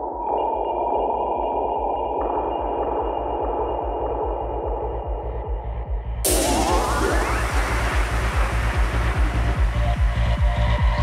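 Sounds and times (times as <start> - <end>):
psytrance synth music with bass: 1.2 - 11.0.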